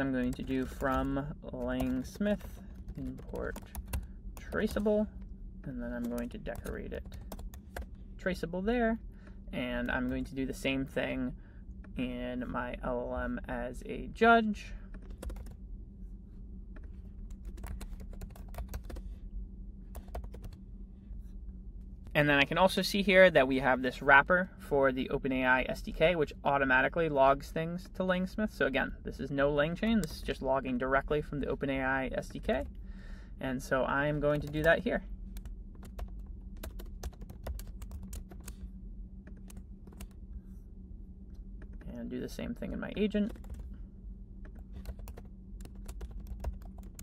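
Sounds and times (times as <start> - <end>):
low steady hum: 0.0 - 47.0
computer keyboard typing: 0.2 - 5.0, 6.0 - 7.9, 15.0 - 15.6, 17.3 - 19.0, 20.0 - 20.6, 35.4 - 38.6, 43.2 - 43.7, 44.5 - 47.0.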